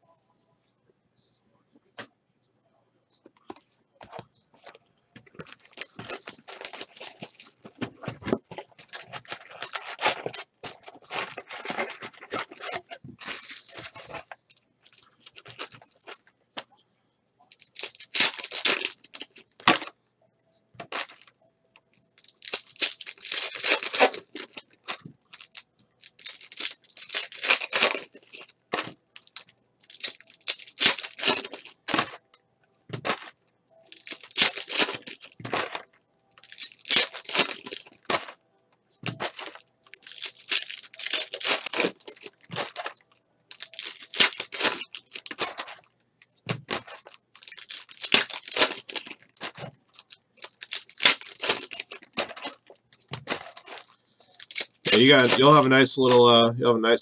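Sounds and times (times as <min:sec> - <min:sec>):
foil wrappers tearing and crinkling: 0:05.3 - 0:07.6, 0:08.3 - 0:16.2, 0:17.5 - 0:19.9, 0:20.9 - 0:21.3, 0:22.2 - 0:32.2, 0:32.9 - 0:38.4, 0:39.0 - 0:56.2.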